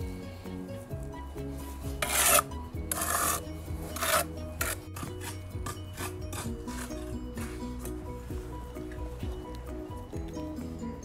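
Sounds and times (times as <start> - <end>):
background music of repeating notes: 0.0 - 11.0
hand tool scraping brick: 1.7 - 8.1.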